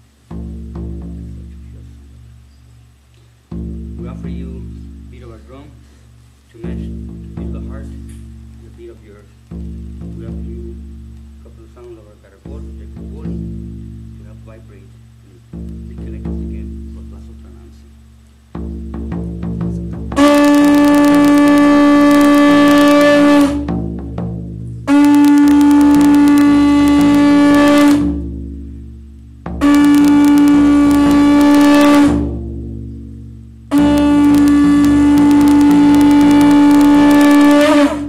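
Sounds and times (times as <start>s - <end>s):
drum beating: 0.0s - 38.0s
conch shell trumpet note: 20.0s - 24.2s, 24.8s - 38.0s.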